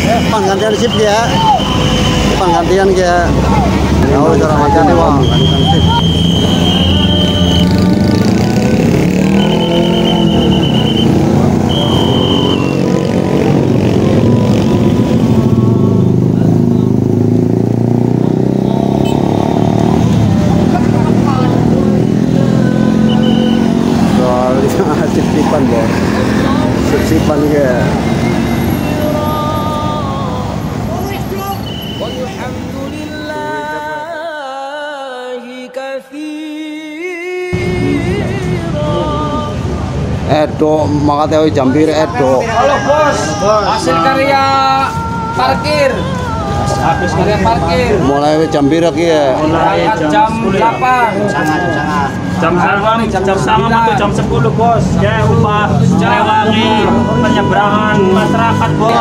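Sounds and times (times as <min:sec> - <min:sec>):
passing motorbikes and cars: 0:00.0 - 0:34.1, 0:37.5 - 0:59.0
whistle blasts: 0:00.8 - 0:02.4, 0:05.1 - 0:08.0, 0:09.1 - 0:13.0, 0:23.1 - 0:23.8, 0:31.5 - 0:32.3
crowd chanting: 0:03.2 - 0:27.3, 0:27.9 - 0:34.0, 0:42.1 - 0:59.0
brief horn toots: 0:09.2 - 0:12.9, 0:23.1 - 0:23.8.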